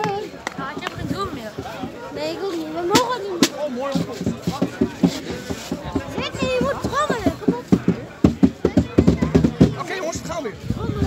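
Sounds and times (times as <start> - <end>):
rhythmic drum beats: 0.0 - 10.4
supporters shouting and chanting: 0.0 - 11.0.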